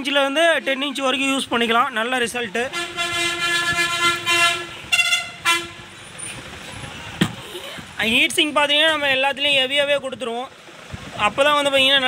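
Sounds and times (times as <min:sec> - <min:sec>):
vehicle horn blasts: 0:02.7 - 0:06.0.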